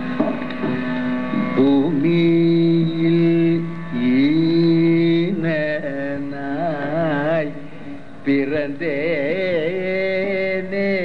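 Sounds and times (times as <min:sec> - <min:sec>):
steady drone: 0:00.0 - 0:11.0.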